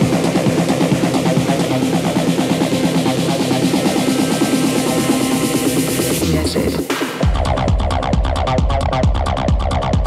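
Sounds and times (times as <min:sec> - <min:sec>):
techno music: 0:00.0 - 0:10.0.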